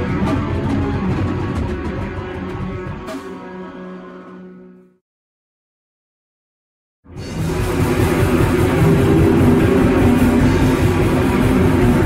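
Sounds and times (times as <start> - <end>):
distorted electric guitars: 0.0 - 3.8, 7.2 - 12.0
drums: 0.0 - 4.1, 7.0 - 12.0.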